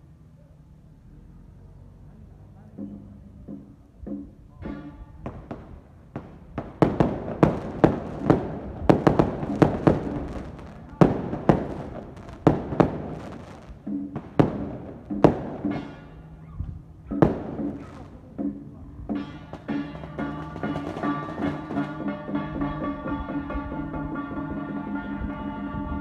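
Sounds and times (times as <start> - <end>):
firecrackers banging: 2.8 - 25.5
procession music: 6.6 - 18.2, 19.1 - 26.0.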